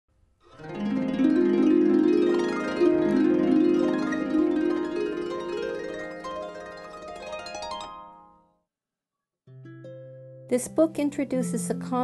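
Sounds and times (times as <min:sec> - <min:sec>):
harp music: 0:00.5 - 0:08.5, 0:09.5 - 0:12.0.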